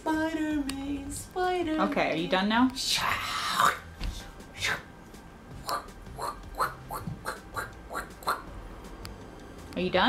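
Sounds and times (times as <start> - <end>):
man making squeaky mouth noises: 5.6 - 8.5.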